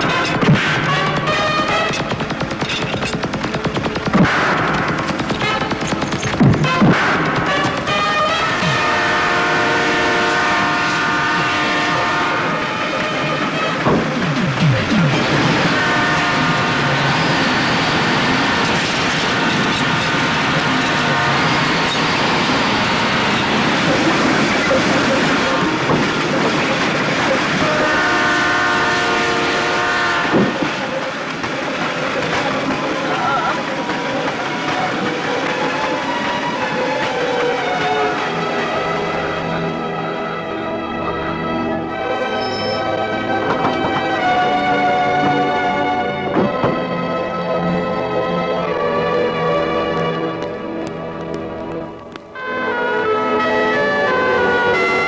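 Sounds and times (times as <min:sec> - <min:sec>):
multi-tone train horn blasts: 0:00.0 - 0:02.3, 0:04.3 - 0:06.0, 0:06.6 - 0:32.8, 0:33.6 - 0:47.0, 0:52.3 - 0:55.0
train rumble and clatter: 0:00.0 - 0:55.0.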